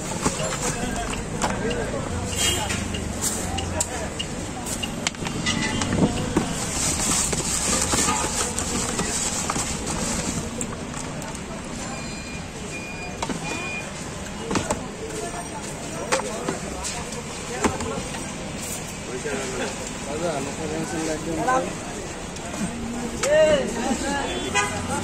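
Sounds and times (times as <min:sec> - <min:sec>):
passing traffic: 0:00.0 - 0:25.0
people talking: 0:00.0 - 0:25.0
short high beeps: 0:11.9 - 0:13.9.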